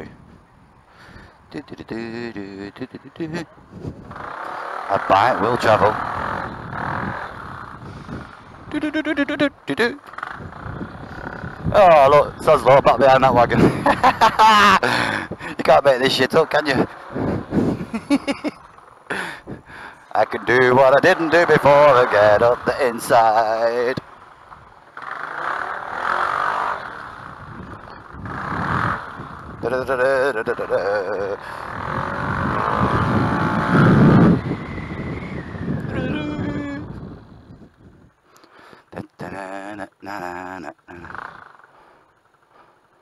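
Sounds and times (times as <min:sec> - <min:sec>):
wind noise on microphone: 0:00.0 - 0:01.5, 0:03.3 - 0:04.4, 0:05.3 - 0:09.6, 0:10.2 - 0:20.0, 0:26.8 - 0:38.2
man laughing: 0:01.5 - 0:03.6, 0:08.6 - 0:10.0, 0:13.3 - 0:20.0, 0:29.6 - 0:31.7, 0:35.9 - 0:36.9, 0:38.9 - 0:41.2
riding noise: 0:01.5 - 0:38.2, 0:39.0 - 0:43.0
scooter engine accelerating: 0:03.2 - 0:37.5.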